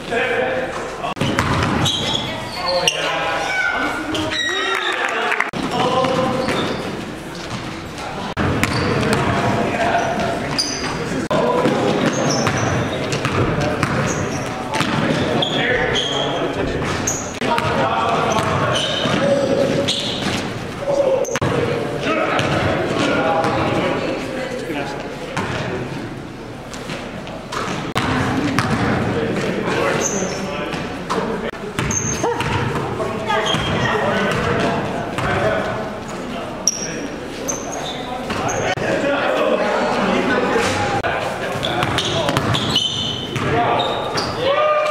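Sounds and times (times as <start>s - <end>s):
players calling out: 0.0s - 24.3s
sneaker squeaks: 0.8s - 4.9s, 5.7s - 21.4s, 29.7s - 35.4s, 36.6s - 38.8s, 41.5s - 44.5s
basketball bouncing on hardwood floor: 1.2s - 1.9s, 28.0s - 29.0s
basketball bouncing: 1.2s - 2.1s, 8.4s - 9.6s, 11.5s - 15.4s, 16.8s - 20.5s, 22.3s - 23.7s, 27.5s - 29.5s, 31.8s - 32.9s, 33.5s - 35.4s, 41.8s - 43.6s.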